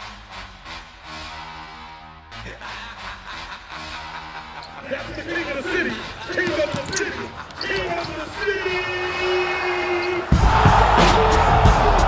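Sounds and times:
basketball bouncing on gym floor: 6.3 - 8.1.

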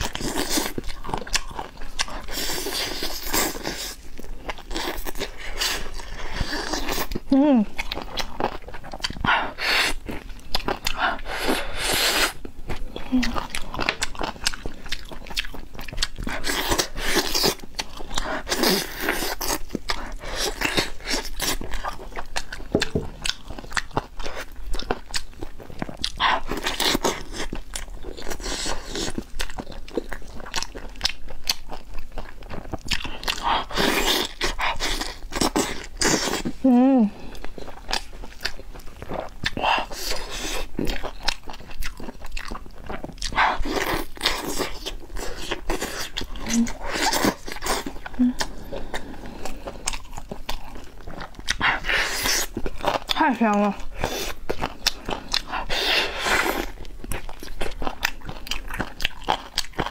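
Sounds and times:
person chewing meat: 0.0 - 59.9.

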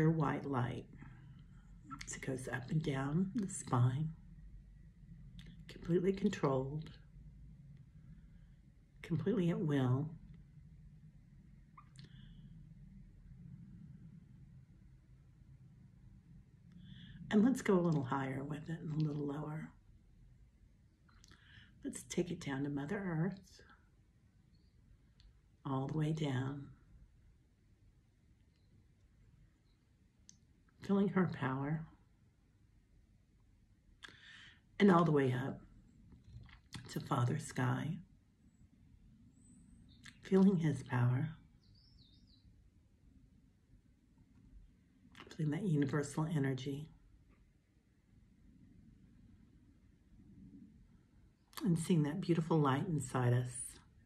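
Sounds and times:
steady low hum: 0.0 - 54.0
faint high bird chirp: 11.6 - 12.6, 24.4 - 25.1, 28.4 - 30.0, 38.5 - 40.3, 41.1 - 42.9
faint squeak-like click: 11.8 - 12.4.

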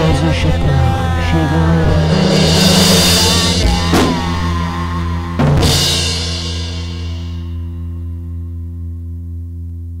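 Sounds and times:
rock band final chord ringing: 1.7 - 8.6
cymbal crash: 2.0 - 8.0.

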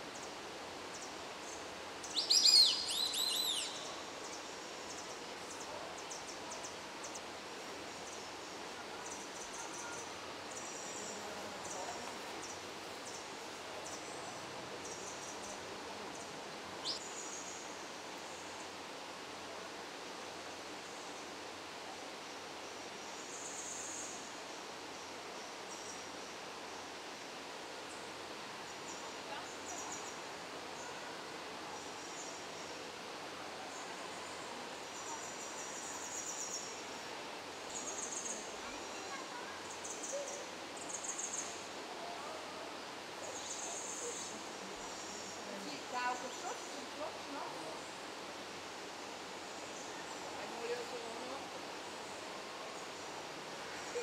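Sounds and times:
steady soft hiss: 0.0 - 54.0.

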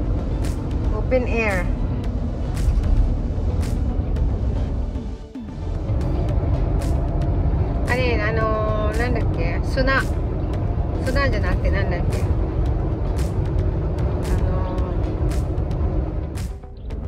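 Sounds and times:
car cabin road and engine noise: 0.0 - 17.0
song with regular beat: 12.0 - 17.0.

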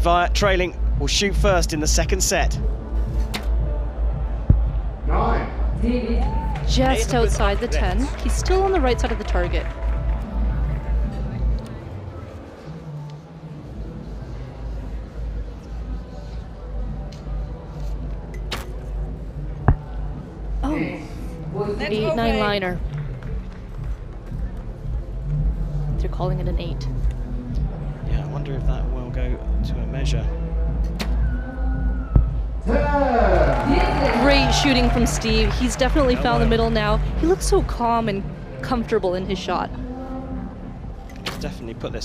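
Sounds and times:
bow shot thump: 3.2 - 3.6, 41.1 - 41.5.

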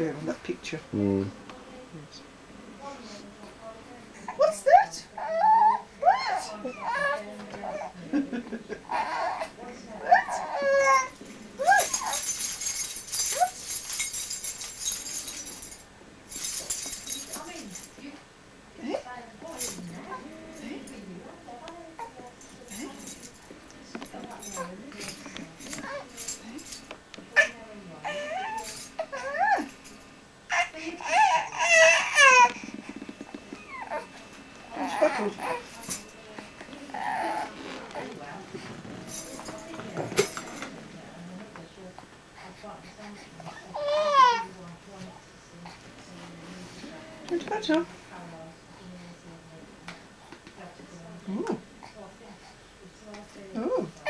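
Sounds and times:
baby cooing and whimpering: 5.2 - 8.0, 8.9 - 12.2, 19.9 - 20.8, 30.5 - 32.8, 33.6 - 35.7, 36.9 - 38.1, 43.5 - 44.5.

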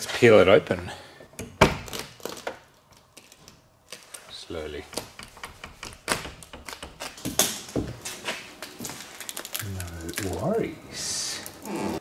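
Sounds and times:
faint clicks and crackles: 8.6 - 10.5.

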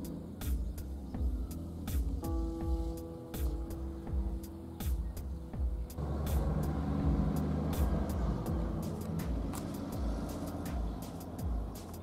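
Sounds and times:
motor vehicle low rumble: 0.0 - 12.0.

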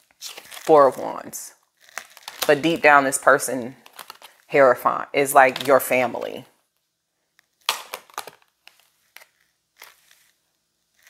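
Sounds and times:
cards being shuffled: 7.6 - 10.4.

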